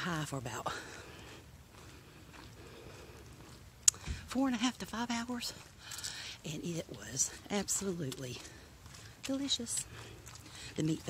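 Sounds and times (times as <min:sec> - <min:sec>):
faint outdoor background hiss: 0:00.0 - 0:11.0.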